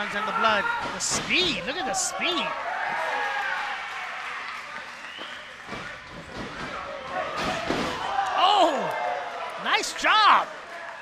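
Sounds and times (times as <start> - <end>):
bodies thudding on wrestling ring: 5.7 - 8.0
crowd shouting: 7.1 - 11.0.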